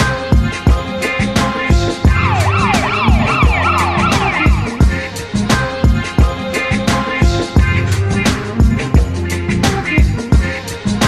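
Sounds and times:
music with kick-drum beat: 0.0s - 11.0s
fast wailing siren: 2.1s - 4.8s.

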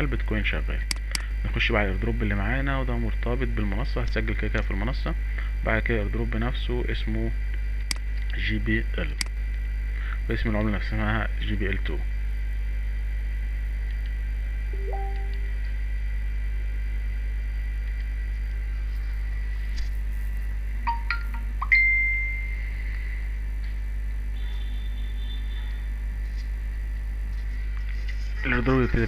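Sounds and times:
low electrical hum: 0.0s - 29.0s
high chime: 14.8s - 15.4s.

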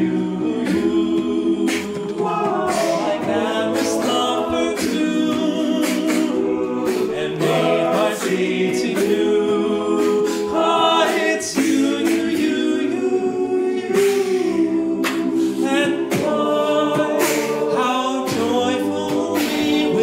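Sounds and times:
lead voice singing: 0.0s - 20.0s
men's choir singing in harmony: 0.0s - 20.0s.

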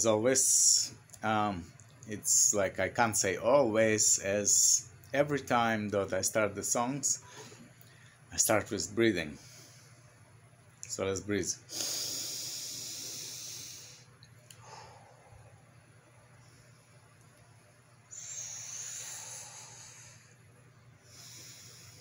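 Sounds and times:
quiet breaths: 7.2s - 8.3s, 9.3s - 10.5s, 11.6s - 22.0s
man exhaling through pursed lips: 11.7s - 15.7s, 18.1s - 20.4s.

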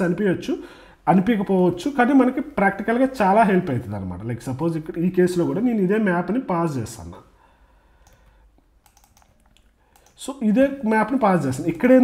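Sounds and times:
faint keyboard keystrokes: 8.0s - 10.2s.

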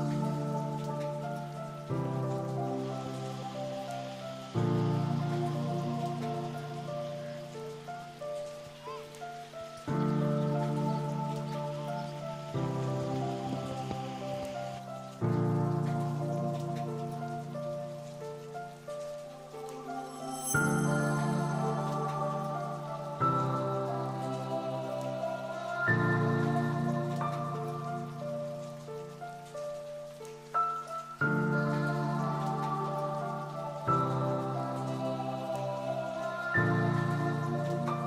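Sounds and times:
slow calm background music: 0.0s - 38.0s
soft hiss: 0.0s - 38.0s.

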